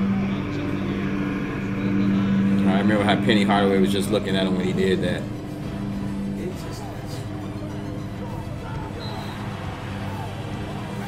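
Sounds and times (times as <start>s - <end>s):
higher tone: 0.0s - 6.4s
steady low hum: 0.0s - 11.0s.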